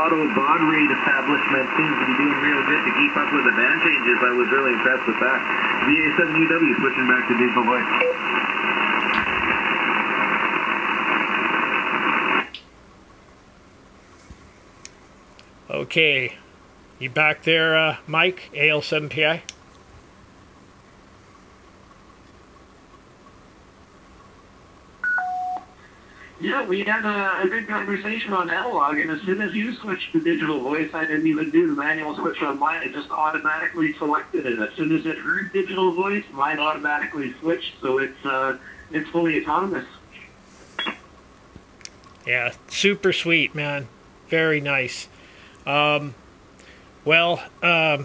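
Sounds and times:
faint background hum: 0:00.0 - 0:48.0
electronic chirp from radio: 0:06.9 - 0:08.4, 0:25.0 - 0:25.7, 0:40.2 - 0:41.0
two-tone beep: 0:25.0 - 0:25.7
faint clicks: 0:41.6 - 0:42.3.

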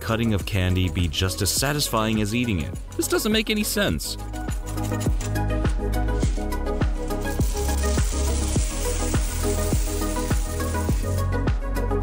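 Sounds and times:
background music with steady beat: 0:00.0 - 0:12.0
candy pieces rattling on metal tray: 0:02.6 - 0:11.3.

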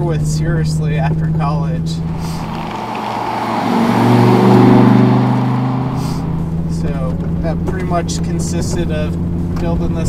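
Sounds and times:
turbocharged car engine revving: 0:01.8 - 0:10.0.

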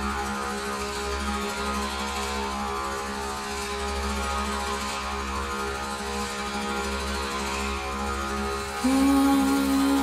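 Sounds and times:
slow meditative drone music: 0:00.0 - 0:10.0.

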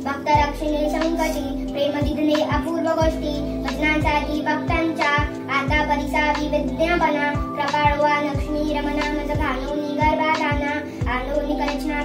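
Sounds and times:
girl chanting a hymn: 0:00.0 - 0:12.0.

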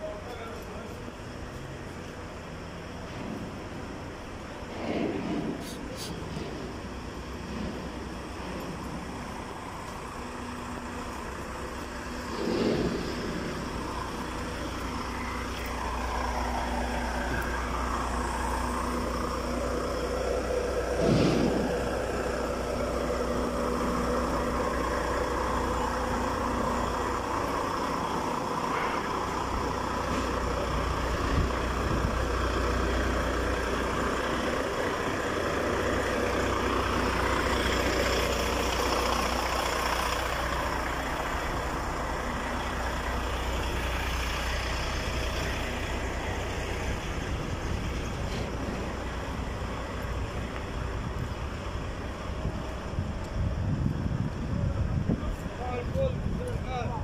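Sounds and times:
truck diesel engine idling: 0:00.0 - 0:57.0.

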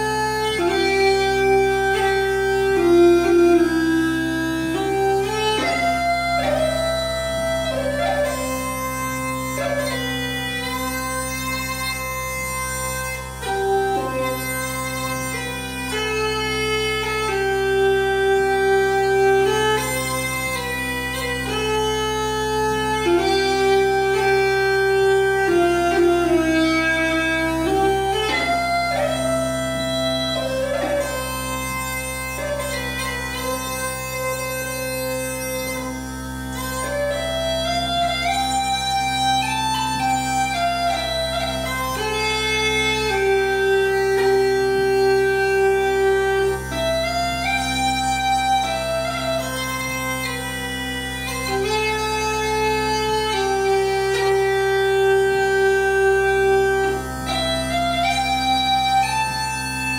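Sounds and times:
pipe drones: 0:00.0 - 0:59.9
uilleann pipes melody: 0:00.0 - 0:59.9.

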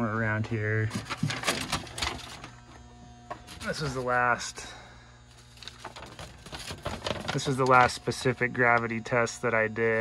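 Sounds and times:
paper rustling and crinkling: 0:00.9 - 0:02.6, 0:03.4 - 0:04.2, 0:05.3 - 0:08.8.

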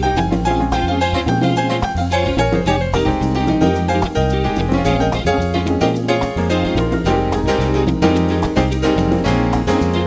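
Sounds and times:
bass line: 0:00.0 - 0:10.0
keyboard chords: 0:00.0 - 0:10.0
steady beat: 0:00.0 - 0:10.0.

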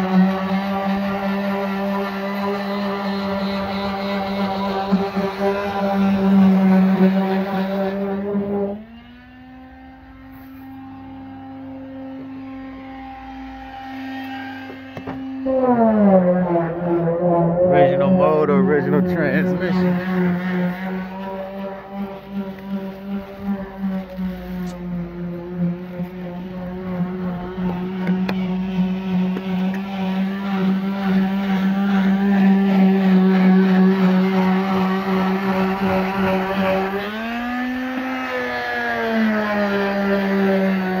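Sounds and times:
car engine idling and revving: 0:00.0 - 0:41.0.

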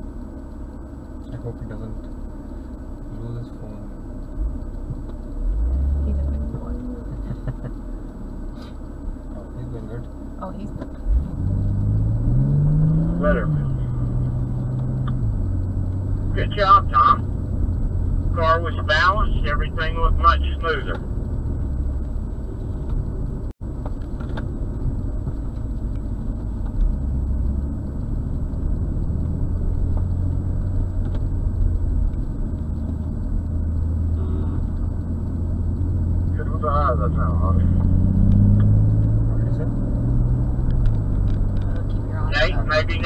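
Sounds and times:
car engine: 0:00.0 - 0:43.0
road noise: 0:00.0 - 0:43.0.

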